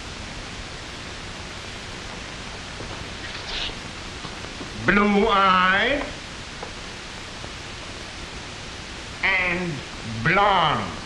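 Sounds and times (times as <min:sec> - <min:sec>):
old film soundtrack hiss: 0:00.0 - 0:11.0.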